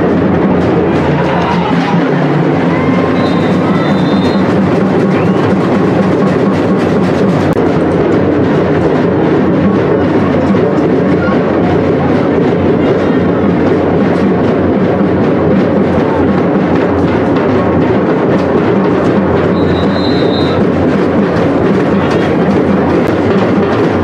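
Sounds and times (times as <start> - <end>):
rapid drum beats: 0.0 - 24.0.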